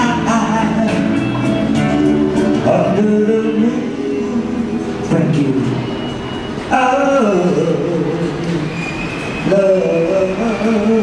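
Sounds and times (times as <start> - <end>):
man singing long notes: 0.0 - 5.9, 6.7 - 8.8, 9.4 - 11.0.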